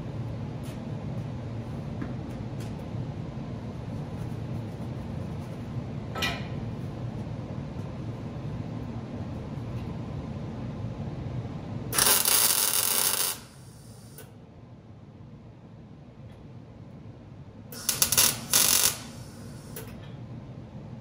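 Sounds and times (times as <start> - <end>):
welder crackling: 12.0 - 14.2, 17.8 - 19.8.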